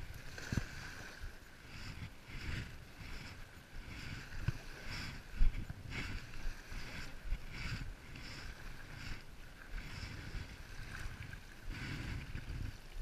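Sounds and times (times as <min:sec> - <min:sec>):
water splashing at shoreline: 0:00.0 - 0:13.0
wind buffeting microphone: 0:00.0 - 0:13.0.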